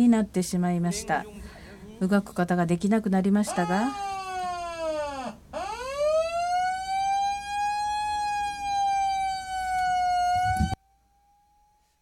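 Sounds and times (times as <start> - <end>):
siren-like wailing tone: 3.5 - 12.0.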